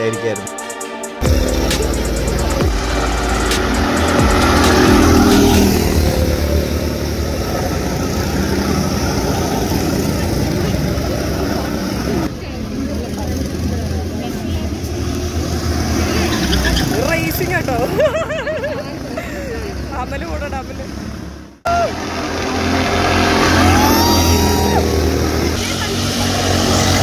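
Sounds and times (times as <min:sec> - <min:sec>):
go-kart engines driving past: 0:01.3 - 0:27.0.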